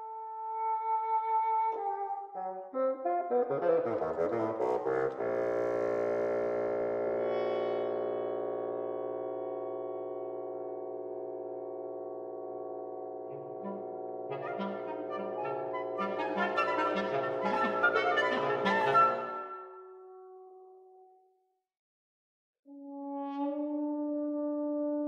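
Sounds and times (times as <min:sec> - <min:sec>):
woodwind quintet playing: 0:00.0 - 0:07.2, 0:13.3 - 0:20.6, 0:22.7 - 0:25.0.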